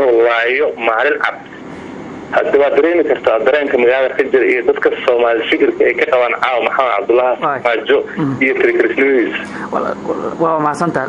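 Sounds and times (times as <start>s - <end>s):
man talking: 0.0s - 1.6s, 2.3s - 9.5s.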